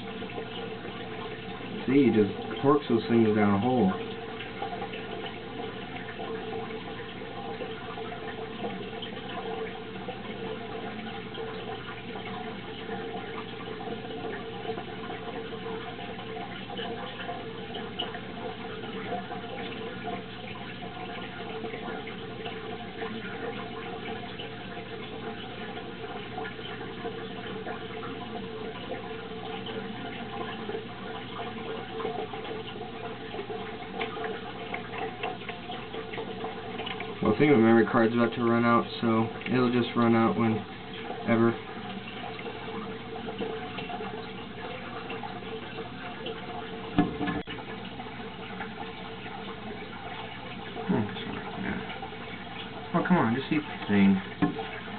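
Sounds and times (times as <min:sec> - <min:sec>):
faint steady hum: 0:00.0 - 0:54.9
water trickling and splashing: 0:00.0 - 0:54.9.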